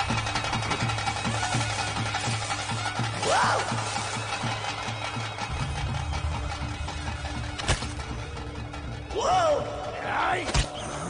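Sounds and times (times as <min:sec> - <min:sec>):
dramatic film score pulsing beat: 0:00.0 - 0:11.0.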